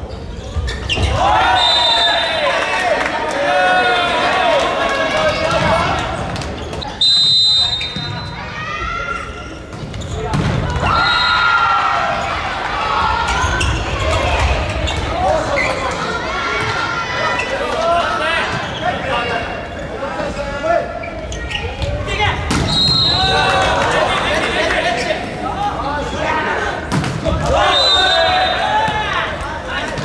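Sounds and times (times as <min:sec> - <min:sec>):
sneakers squeaking on floor: 0:00.0 - 0:02.0, 0:05.4 - 0:08.5, 0:09.2 - 0:11.3, 0:13.3 - 0:17.8, 0:18.4 - 0:23.4
players calling out: 0:00.4 - 0:30.0.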